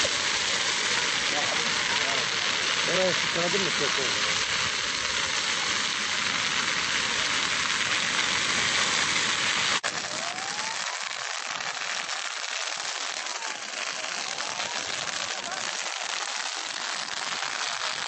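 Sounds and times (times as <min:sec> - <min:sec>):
fire crackling: 0:00.0 - 0:18.0.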